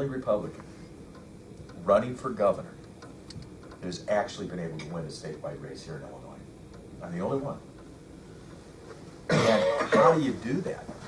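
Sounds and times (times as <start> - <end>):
man speaking: 3.8 - 7.7, 9.3 - 11.0
man clearing his throat: 9.3 - 10.2.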